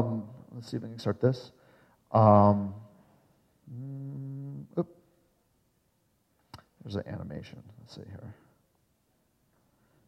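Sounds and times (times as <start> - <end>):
man humming closed-mouth: 3.6 - 4.8.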